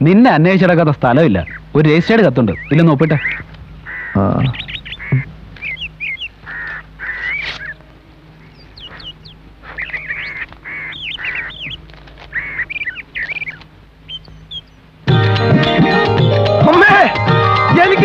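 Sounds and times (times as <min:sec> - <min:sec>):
small birds chirping: 0:00.0 - 0:18.0
ducks quacking: 0:01.1 - 0:14.8.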